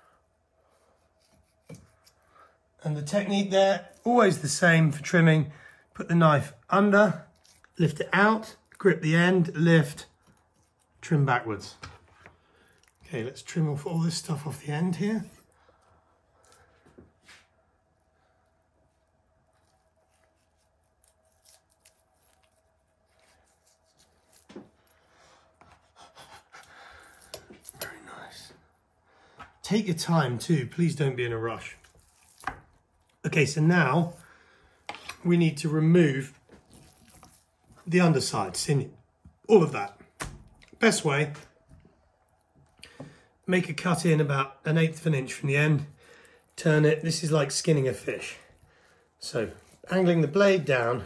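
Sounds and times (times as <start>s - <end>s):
faint steady hum: 0.0s - 51.0s
knife scrape: 0.9s - 2.2s.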